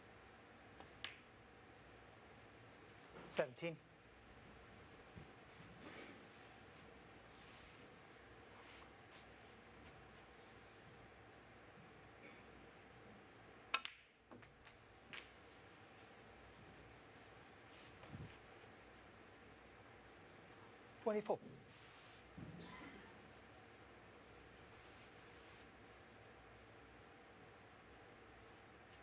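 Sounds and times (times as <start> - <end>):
hushed arena room tone: 0.0 - 29.0
snooker balls clicking: 0.8 - 1.4, 13.7 - 15.5.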